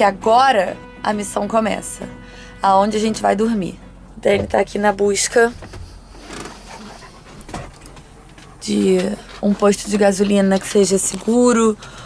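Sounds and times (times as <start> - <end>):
dog panting: 5.6 - 11.5.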